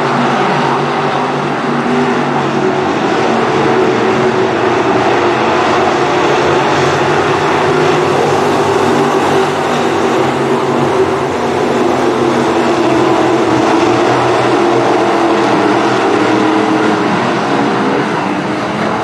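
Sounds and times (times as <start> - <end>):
race car engines: 0.0 - 19.0.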